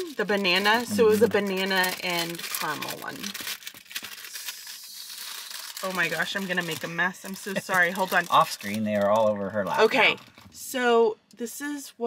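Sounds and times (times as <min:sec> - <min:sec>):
plastic bag crinkling: 0:00.0 - 0:10.6.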